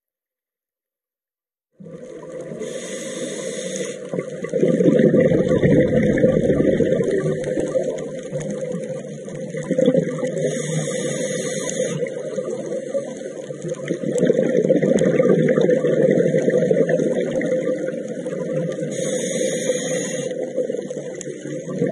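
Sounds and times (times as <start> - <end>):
exhaled bubbles rumbling: 1.7 - 2.7, 4.1 - 10.5, 12.0 - 18.9, 20.3 - 21.9
regulator inhalation hiss: 2.5 - 4.2, 10.3 - 12.2, 18.8 - 20.5.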